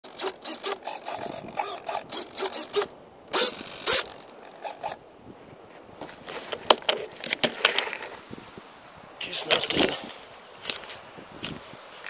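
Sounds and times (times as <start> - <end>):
loud rasping scrapes: 0.0 - 5.0
short scraping rubbing sounds: 0.0 - 5.0.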